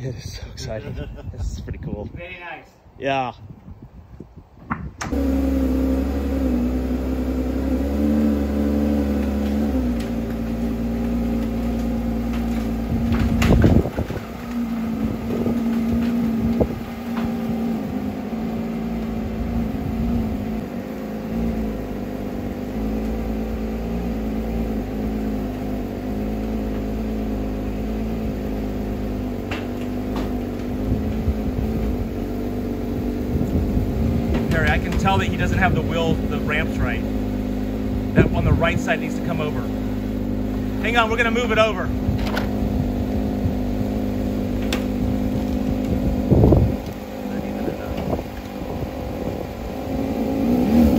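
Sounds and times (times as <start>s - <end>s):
car engine starting and idling: 5.0s - 50.9s.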